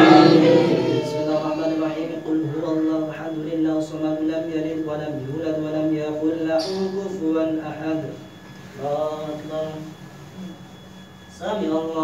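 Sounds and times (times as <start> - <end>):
congregation speaking in unison: 0.0 - 8.1
man chanting prayer: 0.0 - 10.0, 11.3 - 12.0.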